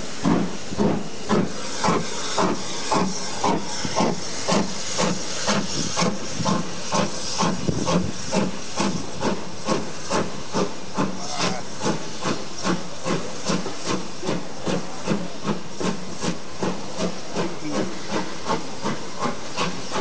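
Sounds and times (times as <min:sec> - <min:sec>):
hiss of steam: 0:00.0 - 0:20.0
steam locomotive chuffing: 0:00.0 - 0:20.0.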